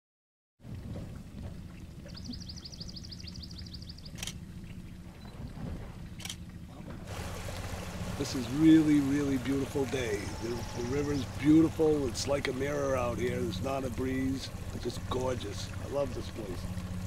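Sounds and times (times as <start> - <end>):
boat motor running: 0.7 - 17.0
bird trilling: 9.7 - 11.9.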